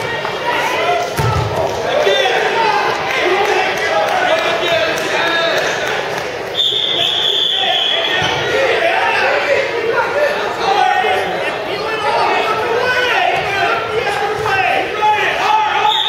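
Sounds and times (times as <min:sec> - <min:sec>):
voices shouting in echoing gym: 0:00.0 - 0:16.0.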